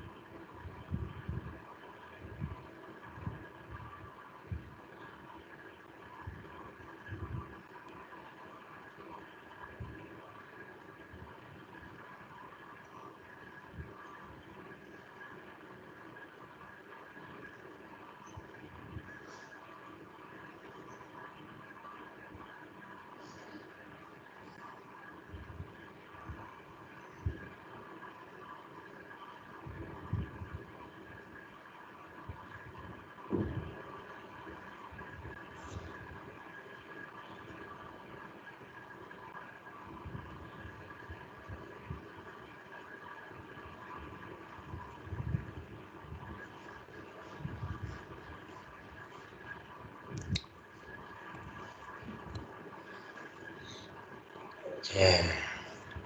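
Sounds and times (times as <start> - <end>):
faint background hum: 0.0 - 56.0.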